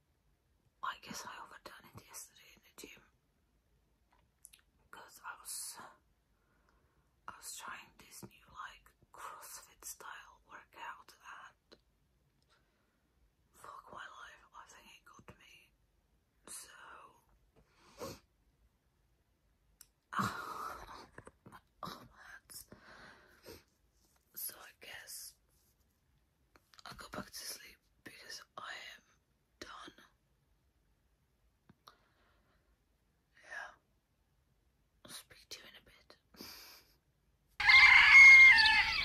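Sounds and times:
woman whispering: 0.8s - 3.2s, 4.9s - 6.0s, 7.3s - 11.8s, 13.6s - 15.8s, 16.4s - 17.3s, 20.1s - 22.8s, 24.3s - 25.4s, 26.8s - 30.2s, 33.3s - 33.9s, 35.0s - 36.3s.

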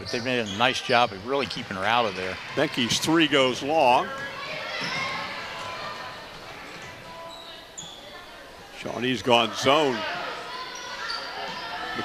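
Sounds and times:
shoes squeaking on floor: 0.0s - 1.8s, 6.4s - 8.4s, 10.6s - 12.0s
crowd chatter: 0.0s - 12.0s.

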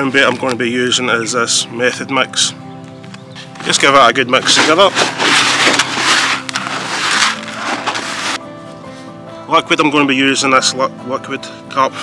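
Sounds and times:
background music: 0.0s - 12.0s
hand stirring dry bait in bucket: 4.4s - 8.4s.

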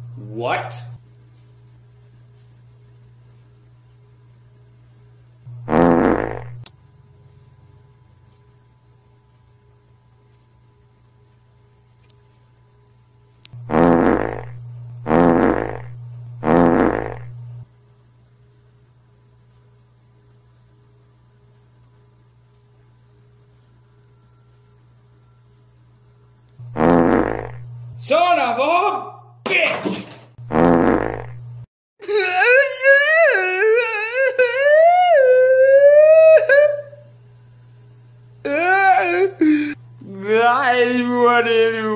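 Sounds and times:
steady low hum: 0.0s - 29.7s, 30.3s - 41.9s
buzzy electronic honks: 5.5s - 6.6s, 13.6s - 17.3s, 26.6s - 27.7s
short raspy blaring noises: 5.5s - 6.7s, 13.6s - 17.4s, 26.6s - 29.3s, 30.4s - 37.1s
man wailing: 32.0s - 37.0s, 38.4s - 41.9s.

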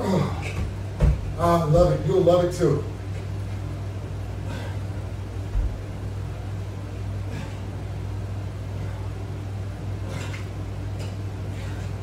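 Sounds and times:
air conditioner humming: 0.0s - 12.0s
man exhaling: 4.4s - 5.0s, 7.2s - 7.8s.

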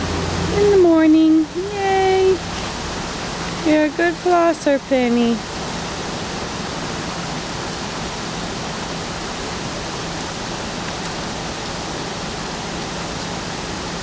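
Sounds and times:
low constant hum: 0.0s - 14.0s
steady hiss: 0.0s - 14.0s.

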